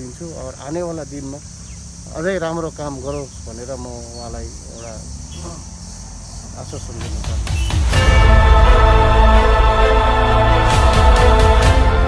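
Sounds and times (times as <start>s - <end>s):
high-pitched insect chorus: 0.0s - 10.6s
man's voice: 6.6s - 12.0s.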